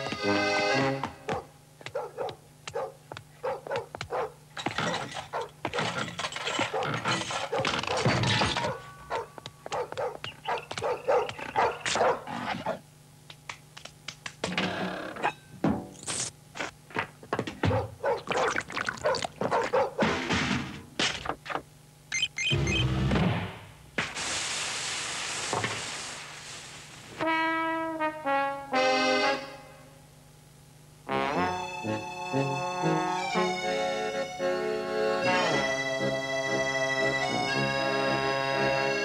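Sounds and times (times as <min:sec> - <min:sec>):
dog-like yelping barks: 0:01.3 - 0:04.4, 0:05.3 - 0:05.9, 0:06.7 - 0:12.8, 0:17.6 - 0:20.0.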